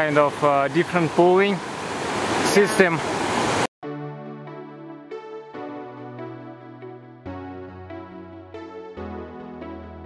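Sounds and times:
mountain stream rushing: 0.0 - 3.7
electronic synthesizer music: 3.8 - 10.0.

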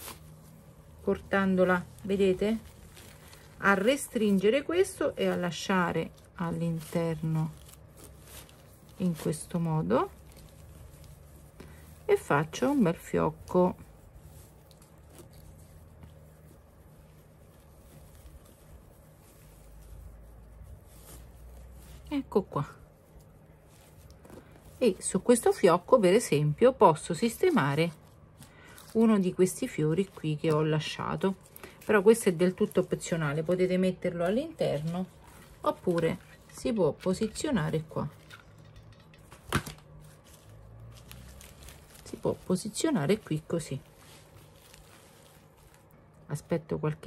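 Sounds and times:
low steady hum: 0.0 - 47.0
rustling of burlap ribbon: 0.0 - 47.0.

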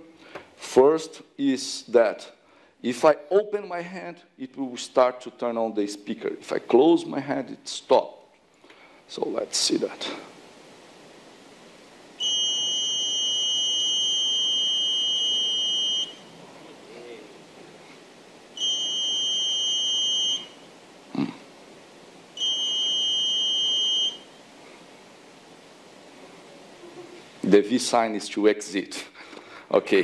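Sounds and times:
high-pitched electronic buzzer tone: 12.2 - 16.3, 18.6 - 20.7, 22.4 - 24.3.

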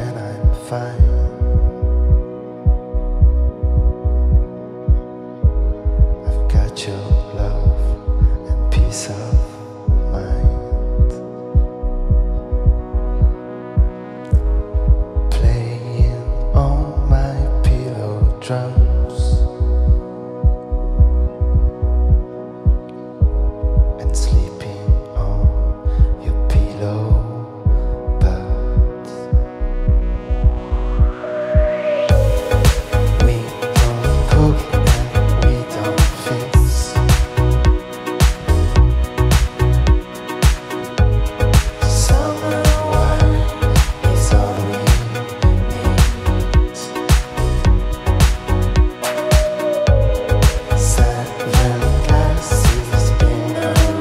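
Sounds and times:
electro-pop music: 0.0 - 54.0
held synthesizer chord: 0.0 - 54.0
swelling whooshes: 31.1 - 45.3.

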